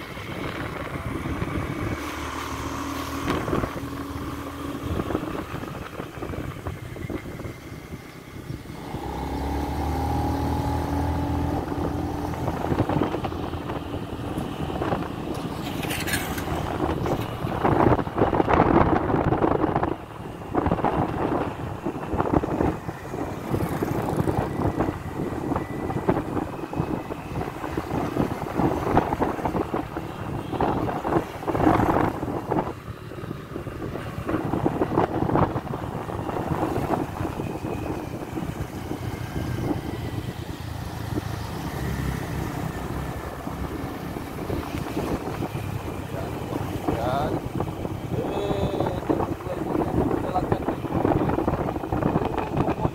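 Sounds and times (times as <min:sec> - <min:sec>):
motorcycle running: 0:00.0 - 0:52.9
wind buffeting microphone: 0:00.0 - 0:52.9.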